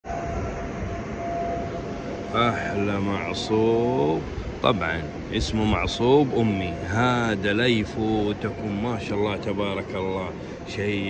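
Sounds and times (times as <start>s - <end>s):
mechanical hum and rushing: 0.0s - 11.0s
thin constant whine: 0.0s - 11.0s.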